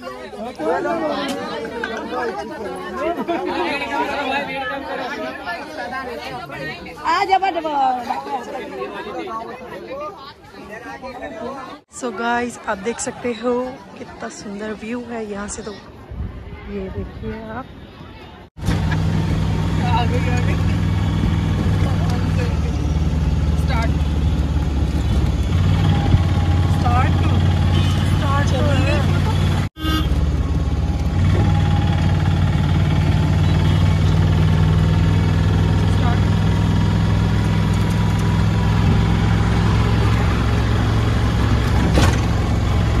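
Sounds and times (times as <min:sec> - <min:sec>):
auto-rickshaw engine and road rumble: 0:17.0 - 0:43.0.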